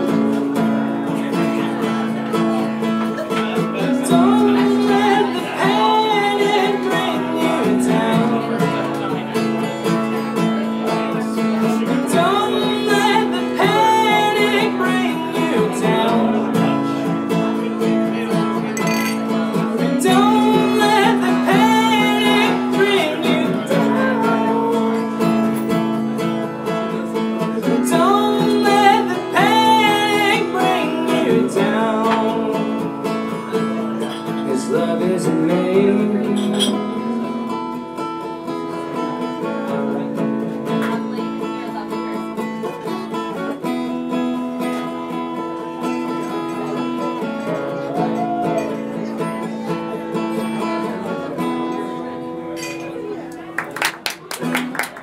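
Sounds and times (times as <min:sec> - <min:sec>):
acoustic guitar chords: 0:00.0 - 0:53.6
man singing: 0:03.8 - 0:09.4, 0:11.6 - 0:17.7, 0:18.9 - 0:25.8, 0:27.6 - 0:38.0.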